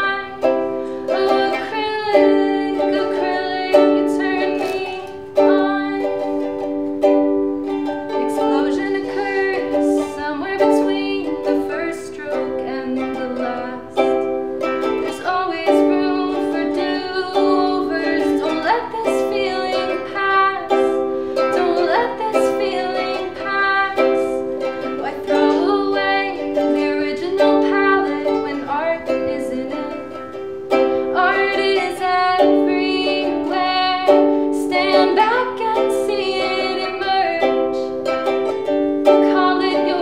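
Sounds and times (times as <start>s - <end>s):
ukulele strumming chords: 0.0s - 40.0s.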